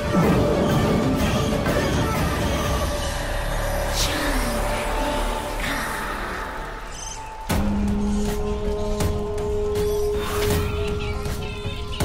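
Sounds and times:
ominous dramatic score: 0.0 - 12.0.

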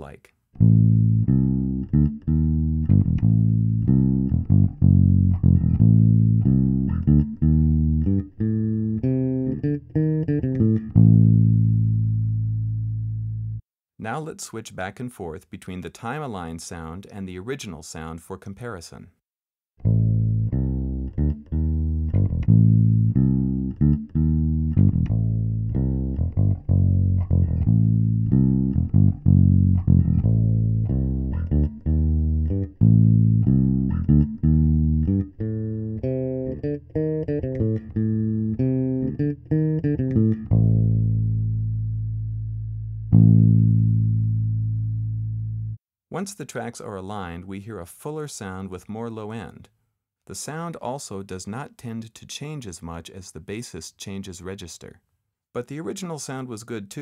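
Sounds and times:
electric bass guitar line: 0.6 - 13.6, 19.8 - 45.8.

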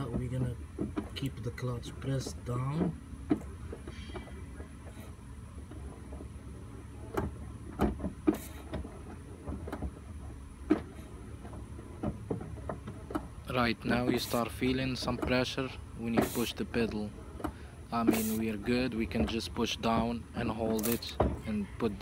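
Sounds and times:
sharp knocks and clicks: 0.0 - 6.3, 7.1 - 21.6.

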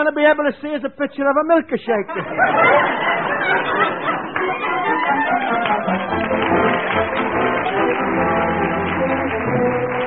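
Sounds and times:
audience laughing: 2.1 - 6.9.

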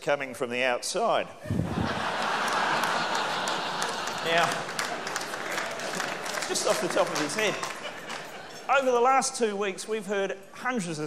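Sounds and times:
large audience laughing: 1.5 - 8.9
scattered claps: 2.3 - 8.6.

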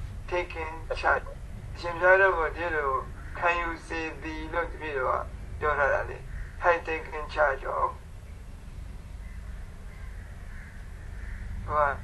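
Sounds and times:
faint bird calls: 3.0 - 3.9, 6.2 - 7.4, 8.2 - 12.0.

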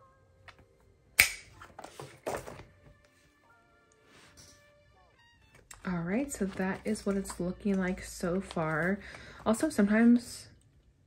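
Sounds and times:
paper rustling: 6.2 - 9.2.

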